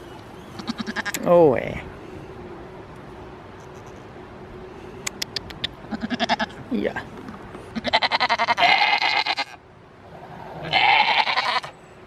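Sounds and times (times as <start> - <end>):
goats bleating: 0.6 - 1.2, 5.9 - 6.6, 7.7 - 9.6, 10.6 - 11.7.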